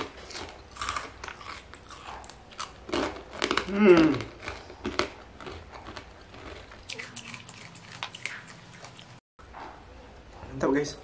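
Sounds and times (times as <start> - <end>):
man chewing food: 0.0 - 10.5
man humming: 3.7 - 4.3.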